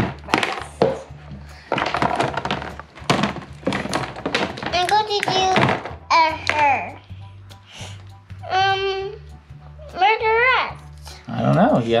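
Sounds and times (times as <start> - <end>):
plastic toy pieces clattering in bin: 0.0 - 1.0, 1.7 - 6.0
background music: 0.0 - 12.0.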